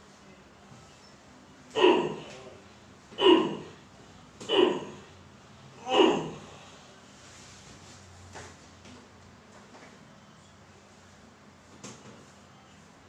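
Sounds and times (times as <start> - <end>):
man's short vocal sounds: 1.7 - 2.5, 5.8 - 6.6.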